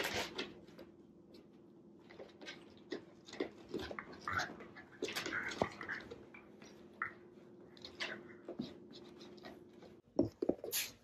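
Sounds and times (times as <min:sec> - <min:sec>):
dogs scuffling: 0:00.0 - 0:10.9.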